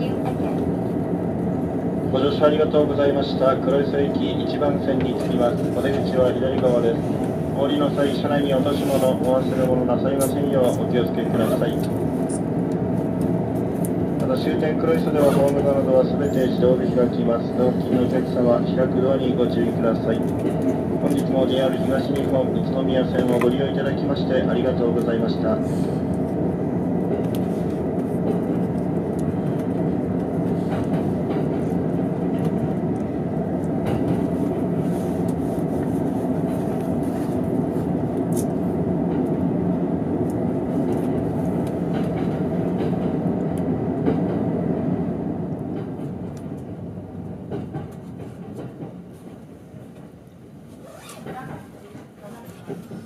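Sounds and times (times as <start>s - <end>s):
train rail rumble: 0.0s - 53.0s
rail clicks: 17.6s - 25.4s, 26.1s - 50.2s.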